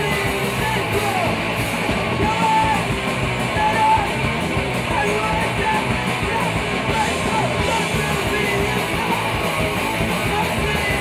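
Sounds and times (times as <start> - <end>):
punk rock band playing live: 0.0 - 11.0.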